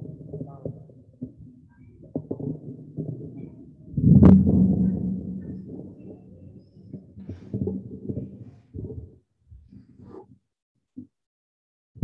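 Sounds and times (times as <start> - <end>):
microphone handling noise: 3.9 - 6.1, 7.2 - 10.4.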